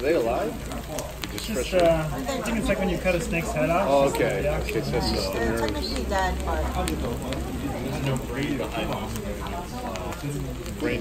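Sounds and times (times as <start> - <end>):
fish sizzling on grill: 0.0 - 11.0
people talking: 0.0 - 11.0
small crackles: 0.0 - 11.0.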